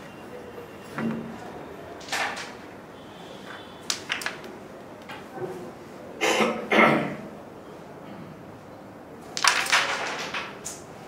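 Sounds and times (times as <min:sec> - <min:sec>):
carrom striker clacking into coins: 0:03.9 - 0:04.5, 0:09.4 - 0:10.9.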